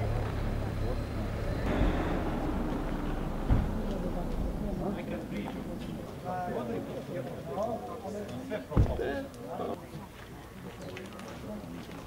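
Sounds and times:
group of people talking: 0:00.0 - 0:12.0
steady low rumble: 0:00.5 - 0:07.6.

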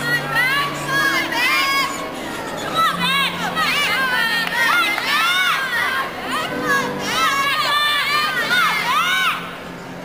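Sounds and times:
high voices shouting and cheering: 0:00.0 - 0:09.7.

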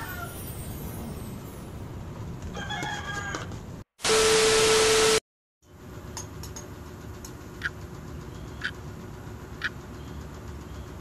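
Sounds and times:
loud burst of static: 0:04.0 - 0:05.2.

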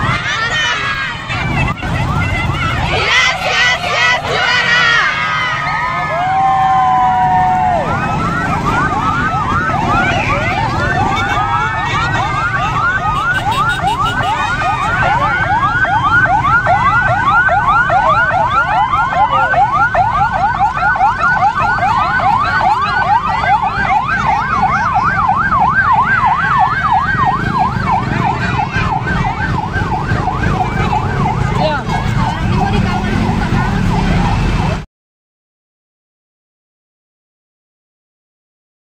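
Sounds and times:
ambulance siren yelping: 0:00.0 - 0:34.8
motorcycle and truck engines rumbling: 0:00.0 - 0:34.9.

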